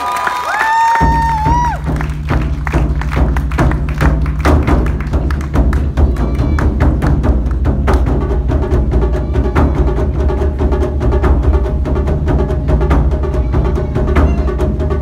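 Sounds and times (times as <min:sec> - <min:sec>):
drums beating fast: 0:00.0 - 0:15.0.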